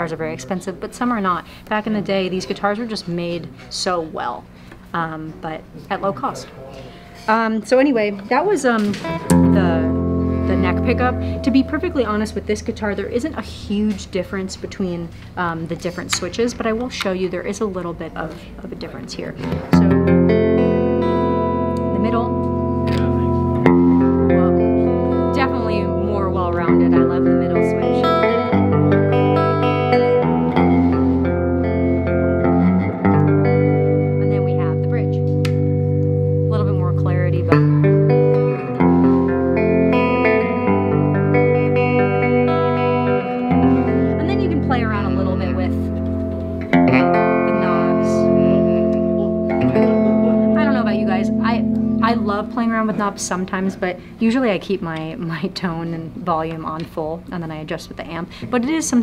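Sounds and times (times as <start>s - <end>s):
electric guitar chords: 6.9s - 15.4s, 18.3s - 54.2s
picked low bass line: 9.2s - 13.8s, 19.7s - 53.3s.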